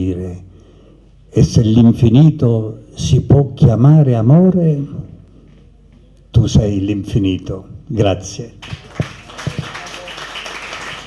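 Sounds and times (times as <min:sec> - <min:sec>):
audience applauding: 0:08.6 - 0:11.0.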